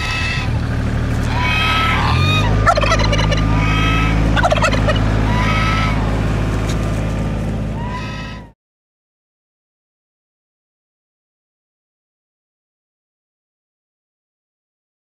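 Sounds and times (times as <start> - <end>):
turkey gobbling: 0.0 - 0.6, 1.2 - 8.5
geese honking: 0.0 - 8.6
steady low hum: 0.0 - 8.6.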